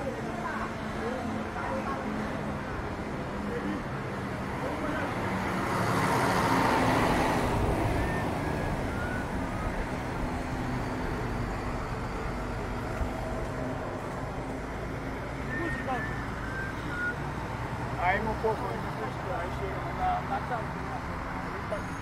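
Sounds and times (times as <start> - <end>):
street traffic noise: 0.0 - 22.0
vehicle passing by: 0.8 - 21.8.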